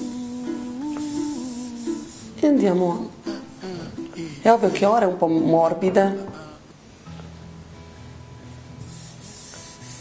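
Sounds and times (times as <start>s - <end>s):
slow melody of long held notes: 0.0s - 4.4s.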